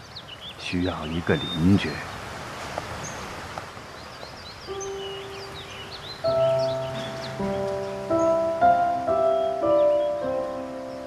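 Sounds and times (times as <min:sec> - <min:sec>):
birds chirping: 0:00.0 - 0:11.0
soft sustained background music: 0:04.3 - 0:11.0.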